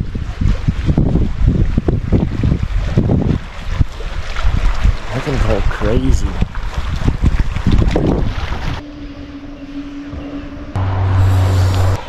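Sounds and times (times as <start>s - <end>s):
choppy lake water: 0.0s - 10.8s
wind buffeting microphone: 0.0s - 12.0s
loud low rumble: 8.8s - 12.0s.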